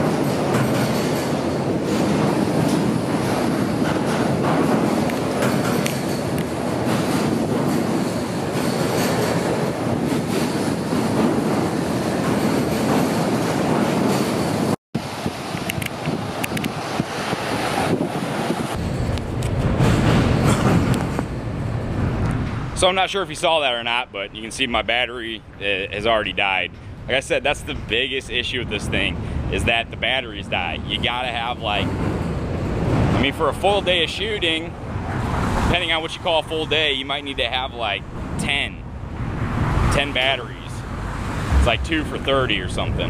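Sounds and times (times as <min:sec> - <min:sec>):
vehicles rumbling over steel grate: 0:00.0 - 0:43.0
heavier low rumble: 0:40.6 - 0:43.0.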